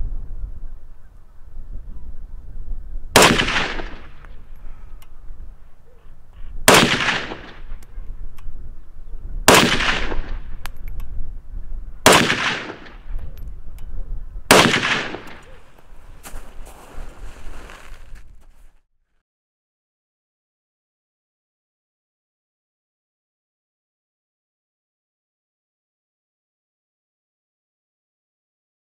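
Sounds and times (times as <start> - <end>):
rifle shots: 3.2 - 4.2, 6.6 - 7.8, 9.5 - 10.6, 12.0 - 13.1, 14.5 - 15.7.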